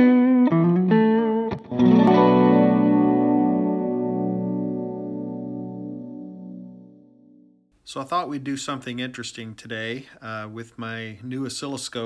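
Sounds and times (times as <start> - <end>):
electric guitar notes and chord: 0.0 - 7.6.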